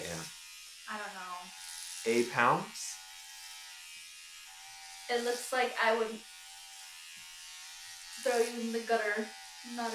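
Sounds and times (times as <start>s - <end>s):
electric hair clippers buzzing: 0.0s - 9.9s.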